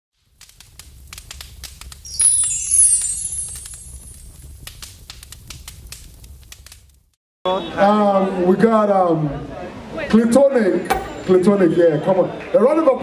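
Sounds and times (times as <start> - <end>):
fire crackling: 0.2 - 7.2
shimmering sweep falling in pitch: 2.1 - 4.2.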